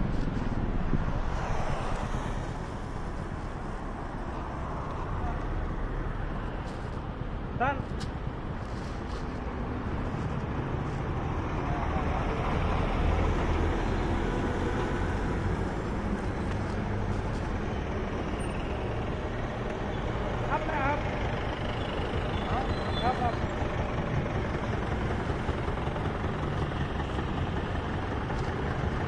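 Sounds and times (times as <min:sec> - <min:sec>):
road traffic engine rumble: 0:00.0 - 0:29.0.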